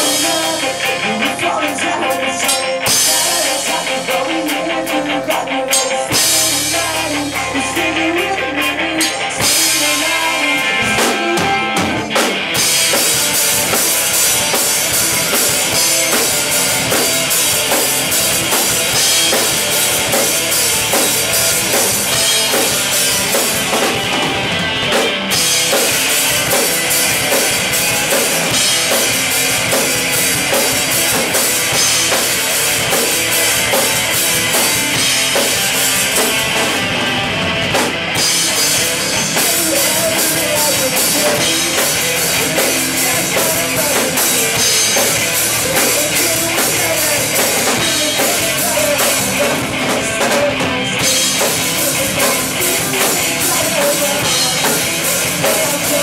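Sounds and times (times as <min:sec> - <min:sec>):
loud rock band playing: 0:00.0 - 0:56.0.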